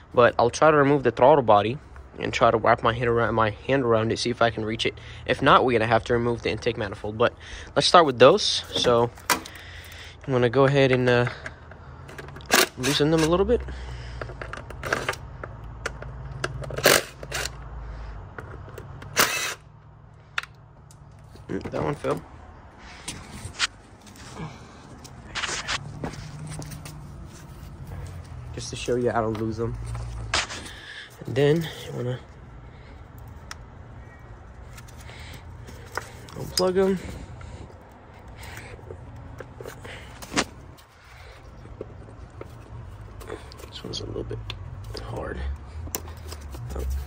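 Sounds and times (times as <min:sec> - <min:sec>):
impact driver bursts: 0:19.0 - 0:19.7.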